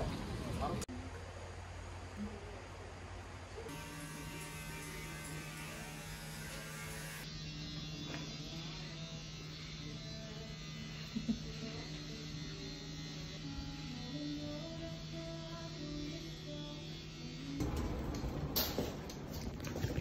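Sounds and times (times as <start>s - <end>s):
low electric buzz: 0.0s - 20.0s.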